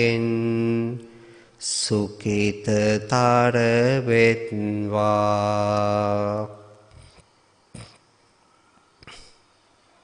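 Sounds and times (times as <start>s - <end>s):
man chanting: 0.0s - 7.2s.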